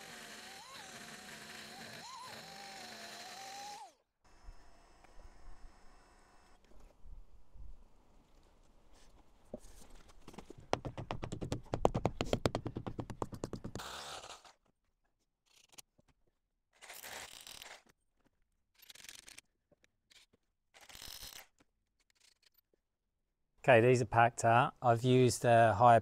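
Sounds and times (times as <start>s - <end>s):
power drill boring into concrete: 0.0s - 5.9s, 13.8s - 14.6s.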